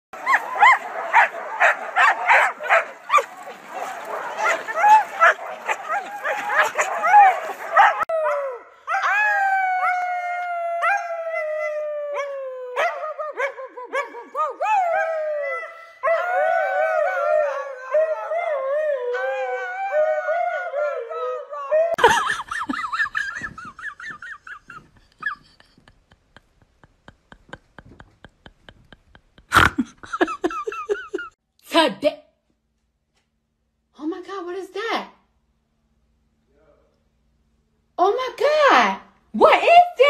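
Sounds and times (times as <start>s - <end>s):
huskies barking: 0.2s - 8.4s
husky howling: 0.2s - 22.0s
woman howling: 4.0s - 22.0s.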